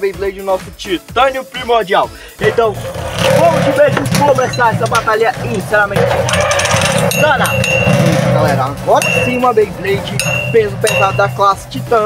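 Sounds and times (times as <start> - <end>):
spinning tops grinding on metal: 2.4 - 12.0
high metallic ringing tone: 4.1 - 11.7.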